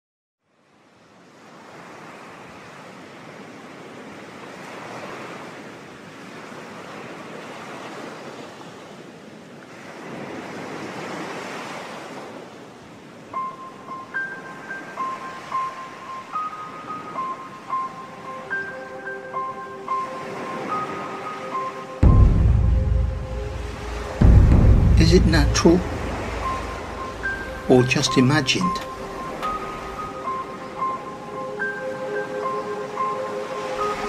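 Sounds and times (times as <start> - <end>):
ocean waves breaking: 1.2 - 34.0
high piano melody: 13.4 - 34.0.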